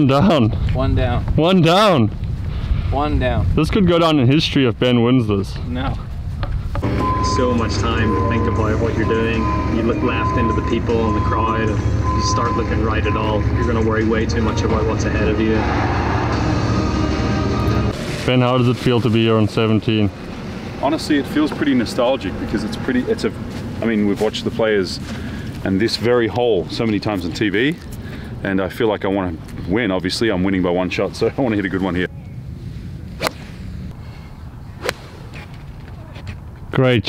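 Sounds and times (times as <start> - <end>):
golf club striking ball: 33.2 - 33.6
short crack: 34.9 - 36.4.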